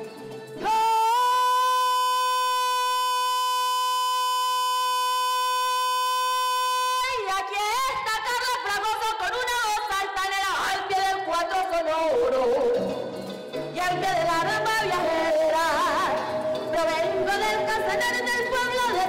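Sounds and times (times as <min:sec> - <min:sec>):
cuatro: 0:00.0 - 0:19.0.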